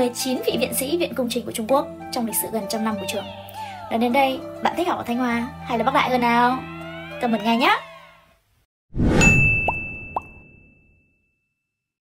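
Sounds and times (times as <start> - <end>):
bell-like ding: 9.2 - 11.8.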